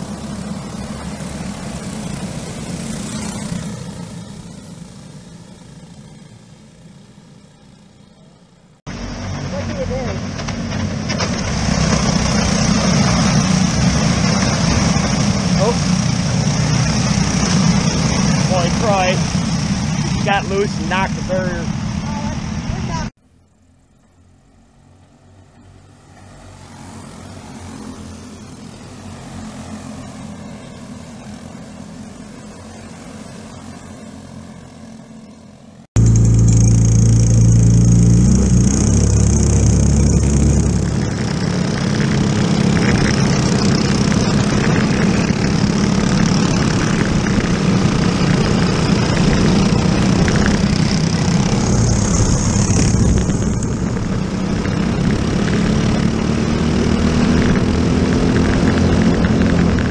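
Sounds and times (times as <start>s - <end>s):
onboard kart engine revving: 0.0s - 8.0s, 8.9s - 23.1s, 27.2s - 59.9s
kart engines passing: 0.0s - 23.1s, 23.8s - 59.9s.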